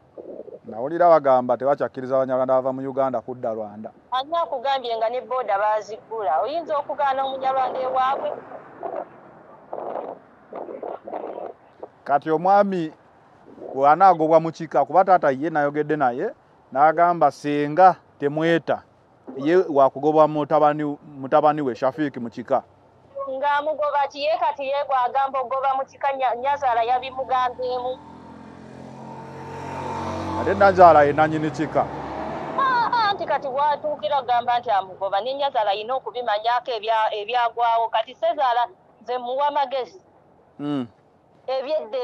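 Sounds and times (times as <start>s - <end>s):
vehicle engine hum: 0.0s - 23.5s, 24.9s - 36.4s
man murmuring: 40.6s - 40.9s.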